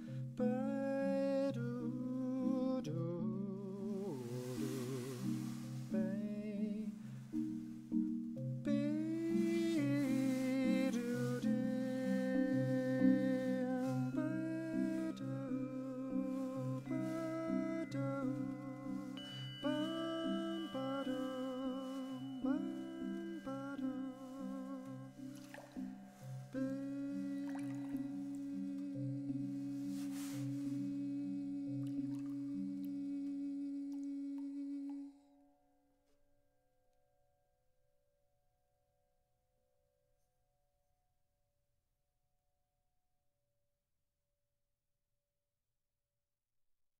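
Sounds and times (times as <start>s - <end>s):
person humming with vibrato: 0.0s - 7.0s, 8.7s - 35.3s.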